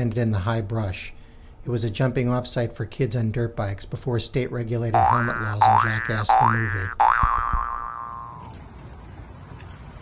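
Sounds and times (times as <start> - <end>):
cartoon boing spring sound: 5.0 - 8.5.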